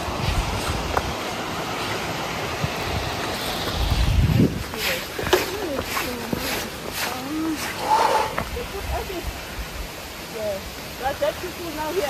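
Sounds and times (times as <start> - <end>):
wind buffeting microphone: 0.0 - 10.0
waterfall rushing: 0.0 - 12.0.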